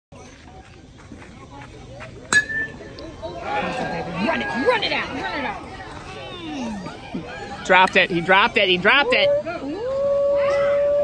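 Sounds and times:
spectators' voices: 0.1 - 11.0
metal bat ping: 2.3 - 2.8.

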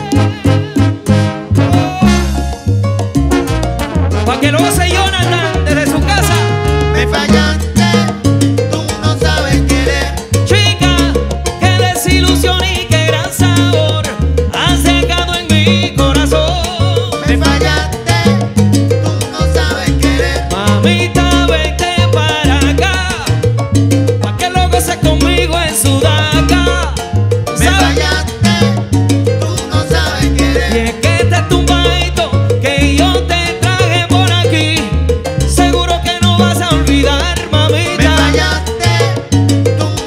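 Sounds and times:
bass line: 0.0 - 40.0
latin percussion: 0.0 - 40.0
piano: 0.0 - 40.0
horns: 0.2 - 2.5, 3.4 - 7.4.

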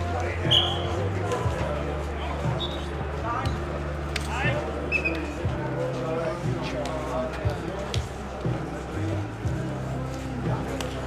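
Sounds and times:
players shouting: 0.0 - 9.1.

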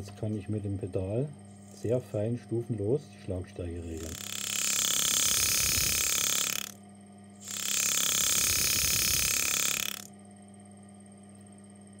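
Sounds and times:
low steady hum: 0.0 - 12.0
pneumatic engraver buzzing: 3.9 - 6.8, 7.4 - 10.1.

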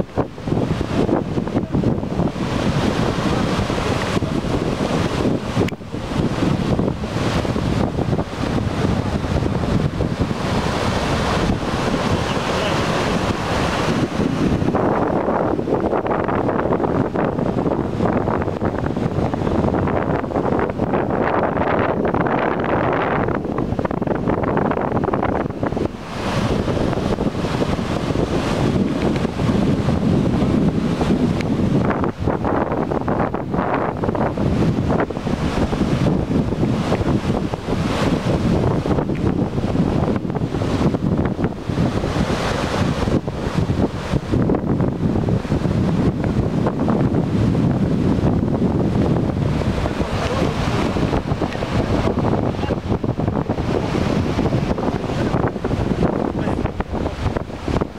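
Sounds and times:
floodwater rushing: 0.0 - 57.9
wind buffeting microphone: 0.0 - 57.9.

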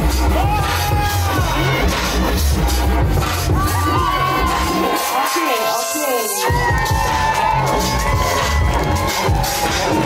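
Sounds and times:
crowd cheering and shouting: 0.0 - 10.0
dance music with heavy bass: 0.0 - 10.0.

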